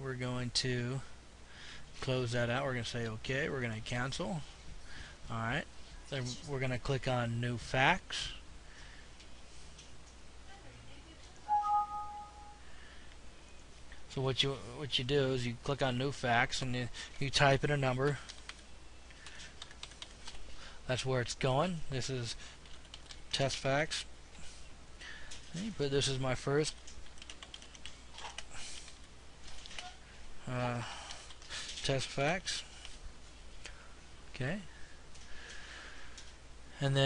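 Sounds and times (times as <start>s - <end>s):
two-tone computer alert chime: 11.5s - 12.6s
computer keyboard keys clicking: 18.3s - 18.6s, 19.2s - 20.4s, 22.6s - 23.2s, 26.7s - 29.9s.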